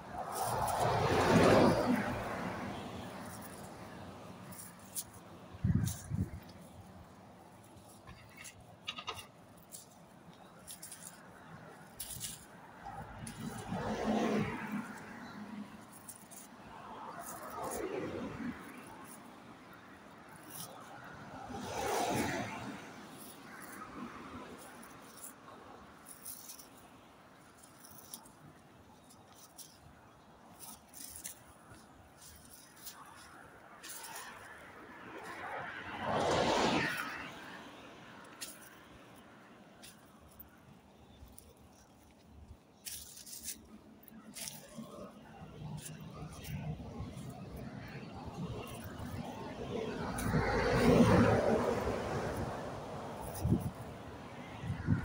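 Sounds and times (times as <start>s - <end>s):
vehicles passing: 0.0s - 55.0s.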